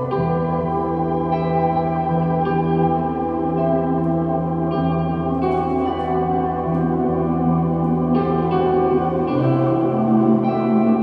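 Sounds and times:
ambient electric guitar music: 0.0 - 11.0.

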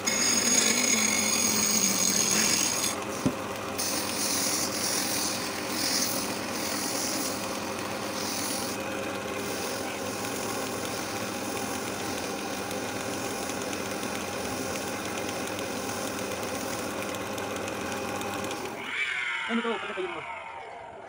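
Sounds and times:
sandpaper on spinning wood: 0.0 - 8.8, 9.4 - 17.0
wood lathe motor humming: 0.0 - 18.8.

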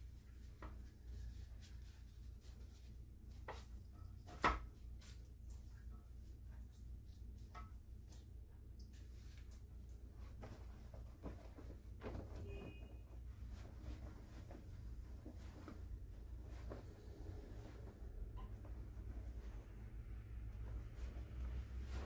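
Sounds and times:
hands handling hair: 8.8 - 22.0.

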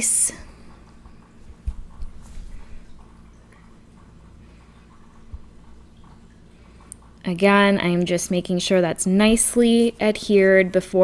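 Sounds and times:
room hum: 0.0 - 11.0.

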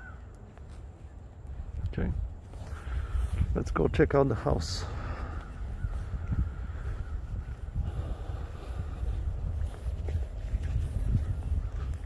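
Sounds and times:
footsteps walking: 0.0 - 3.6, 4.9 - 12.0
wind rumble on microphone: 0.0 - 12.0.

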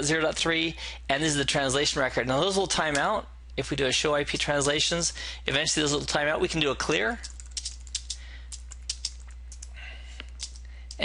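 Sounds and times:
steady low hum: 0.0 - 11.0
computer keyboard typing: 7.2 - 11.0.

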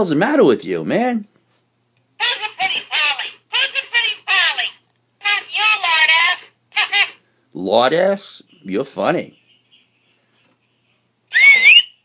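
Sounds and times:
toy parrot whistle-like note: 11.3 - 12.0.

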